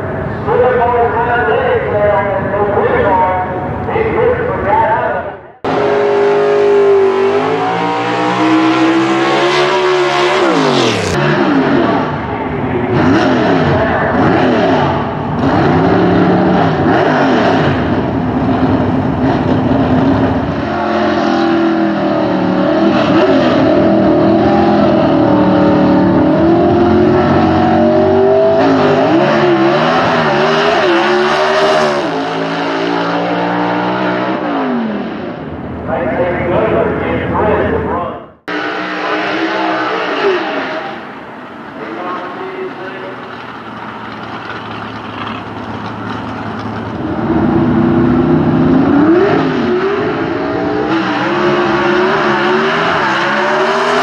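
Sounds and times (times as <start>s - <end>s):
drag car engines at full throttle: 0.0s - 54.0s.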